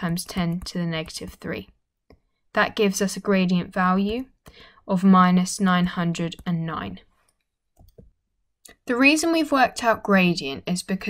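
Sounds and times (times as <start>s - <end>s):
person speaking: 0.0s - 1.7s, 2.6s - 7.0s.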